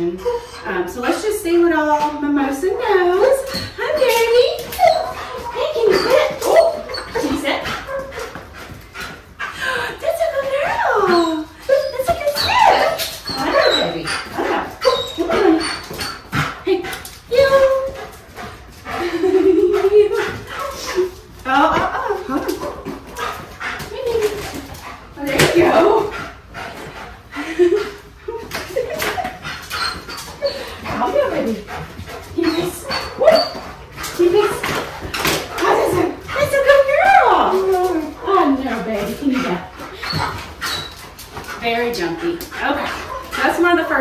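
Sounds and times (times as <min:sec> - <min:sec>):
dog whining and yipping: 0:03.2 - 0:08.4, 0:10.6 - 0:16.4, 0:28.8 - 0:31.5, 0:32.4 - 0:34.7, 0:39.4 - 0:41.2.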